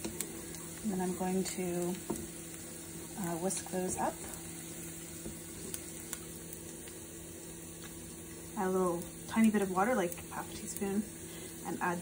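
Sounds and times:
food sizzling in a pan: 0:00.0 - 0:12.0
low steady hum: 0:00.0 - 0:12.0.

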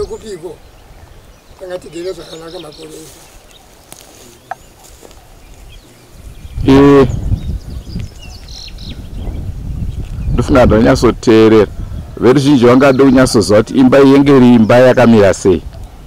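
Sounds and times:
birds chirping: 0:00.0 - 0:16.0
man's voice: 0:05.8 - 0:07.2, 0:10.3 - 0:15.7.

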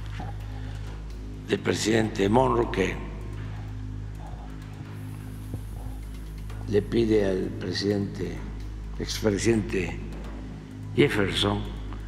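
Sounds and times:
faint background music: 0:00.0 - 0:12.0
low electrical hum: 0:00.0 - 0:12.0.

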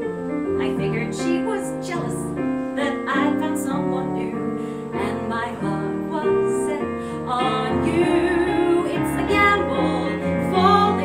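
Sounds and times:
piano accompaniment: 0:00.0 - 0:11.0
woman singing: 0:00.4 - 0:11.0.

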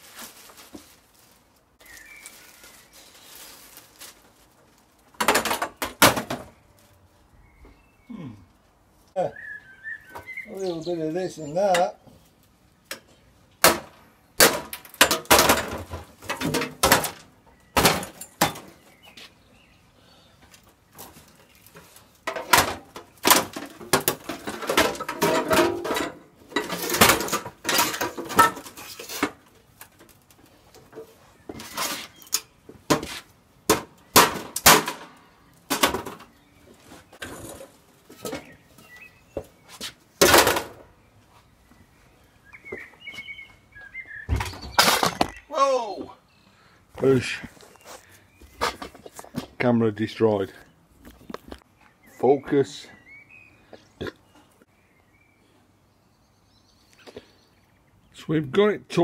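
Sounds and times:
sheet metal clanking and scraping: 0:22.3 - 0:29.4.

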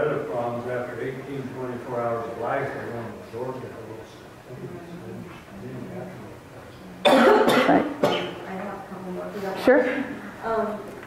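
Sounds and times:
person coughing: 0:07.0 - 0:08.4.

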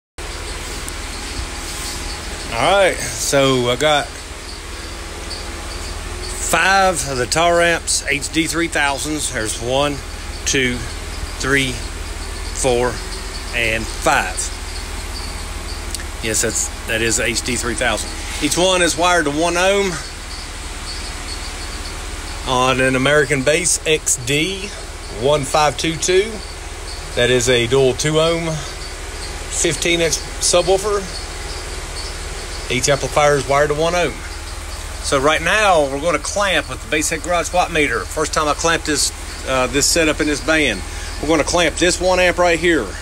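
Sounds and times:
low rumble with hiss: 0:00.2 - 0:43.0.

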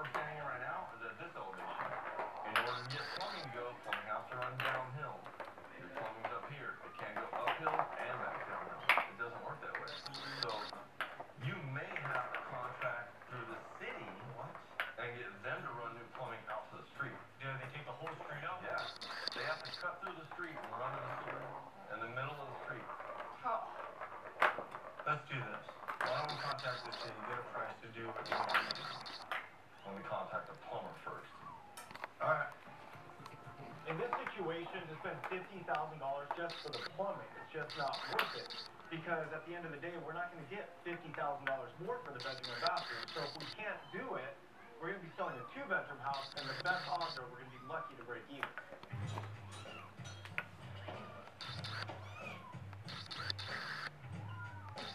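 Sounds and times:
indistinct talking: 0:02.4 - 0:03.9, 0:09.5 - 0:10.7, 0:18.4 - 0:20.8, 0:26.0 - 0:31.7, 0:33.8 - 0:40.2, 0:41.6 - 0:43.7, 0:45.3 - 0:47.5, 0:51.0 - 0:51.8, 0:52.8 - 0:54.0, 0:54.6 - 0:54.9.

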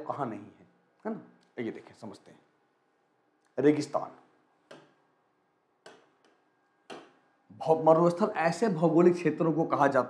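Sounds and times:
stylus tapping whiteboard screen: 0:04.6 - 0:05.2, 0:05.8 - 0:07.4.

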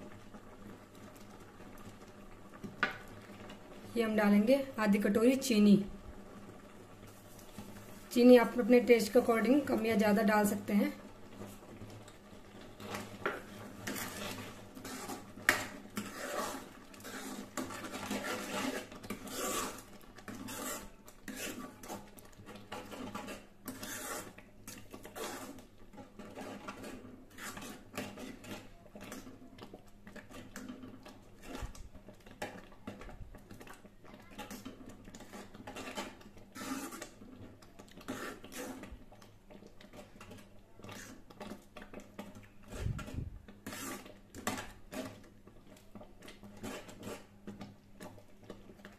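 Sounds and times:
metal ladle scraping a pan: 0:12.8 - 0:29.2, 0:34.4 - 0:37.2, 0:38.0 - 0:39.0, 0:42.6 - 0:45.2, 0:46.4 - 0:47.3.

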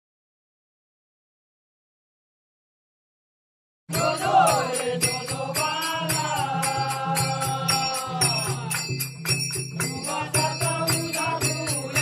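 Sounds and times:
men singing devotional song: 0:03.9 - 0:12.0
rhythmic clapping: 0:03.9 - 0:12.0.

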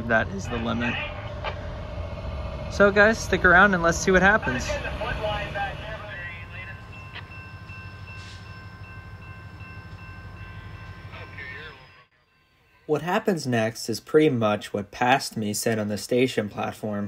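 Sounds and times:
distant locomotive idling: 0:00.0 - 0:13.0.

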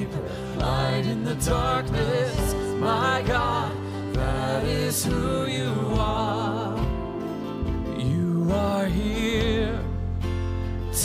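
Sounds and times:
bass guitar: 0:00.0 - 0:11.0
guitars playing: 0:00.0 - 0:11.0
singers singing worship song: 0:00.0 - 0:11.0.

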